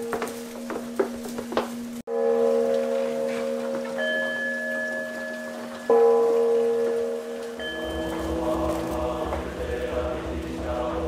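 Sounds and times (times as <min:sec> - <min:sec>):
temple bowl bells ringing: 0:02.1 - 0:10.6.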